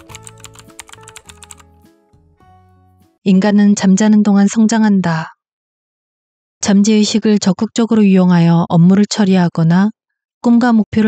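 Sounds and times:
keyboard typing clicks: 0.0 - 1.7
soft background music: 0.0 - 3.4.

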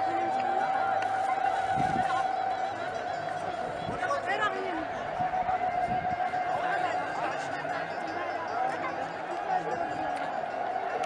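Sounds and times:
long steady high tone: 0.0 - 11.0
murmur of outdoor crowd: 0.0 - 11.0.

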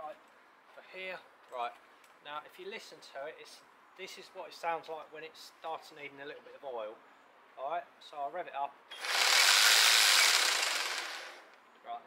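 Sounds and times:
hedge trimmer blades chattering: 9.0 - 11.4.

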